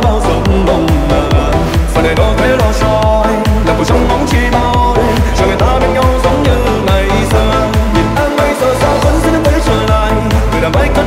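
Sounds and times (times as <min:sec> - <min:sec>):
fast kick-drum beat: 0:00.0 - 0:11.0
sustained synth melody: 0:00.0 - 0:11.0.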